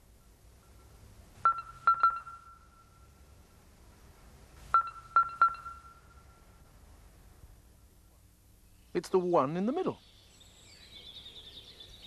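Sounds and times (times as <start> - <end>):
high electronic dings: 1.5 - 3.1, 4.8 - 6.4.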